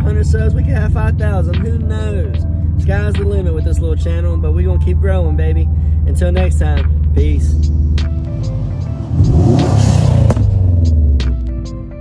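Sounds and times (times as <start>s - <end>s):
car exhaust rumble passing by: 5.7s - 11.5s.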